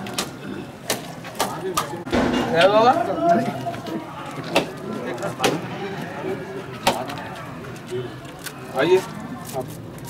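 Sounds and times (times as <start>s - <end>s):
low murmuring: 0.0s - 10.0s.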